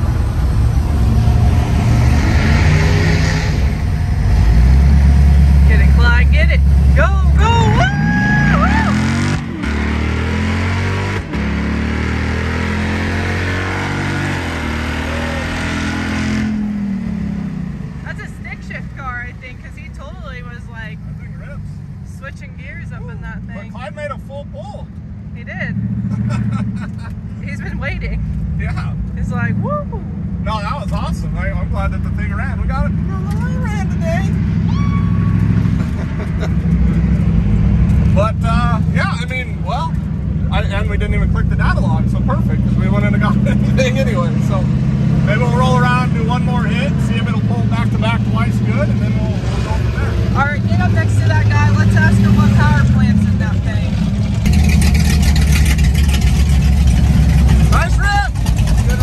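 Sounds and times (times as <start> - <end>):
car engine at full throttle: 0.0 - 59.0
engine low rumble coasting: 0.0 - 59.0.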